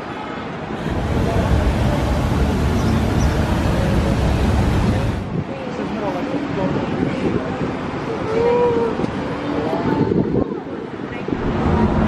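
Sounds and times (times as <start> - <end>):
street traffic rumble: 0.0 - 12.0
fountain water splashing: 0.8 - 5.3.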